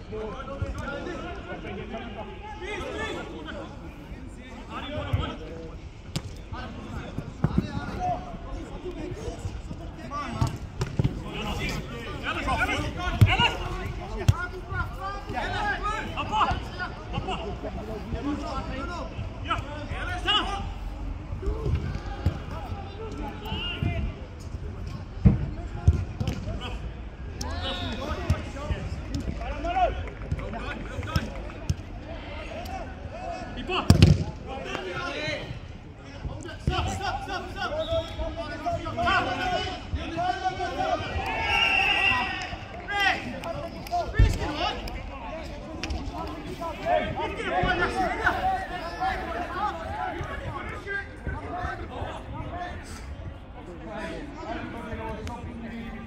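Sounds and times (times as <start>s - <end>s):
players shouting: 10.0s - 24.3s, 36.4s - 53.0s.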